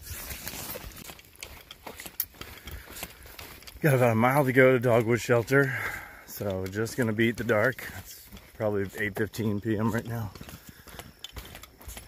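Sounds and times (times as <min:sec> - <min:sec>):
footsteps on wet trail: 0:00.0 - 0:12.0
rustling vegetation: 0:00.0 - 0:12.0
man talking: 0:03.8 - 0:10.5.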